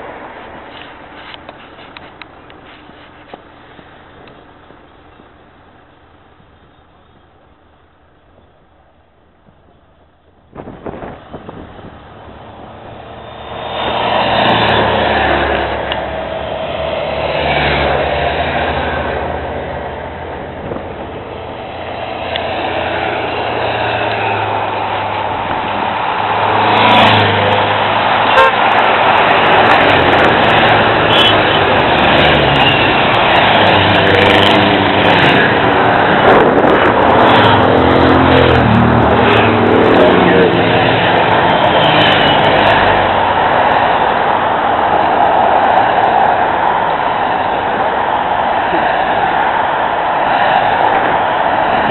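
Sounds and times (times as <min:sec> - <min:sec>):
vehicles passing close by: 0:00.0 - 0:51.9
car horns tooting: 0:28.2 - 0:28.8, 0:31.0 - 0:33.1.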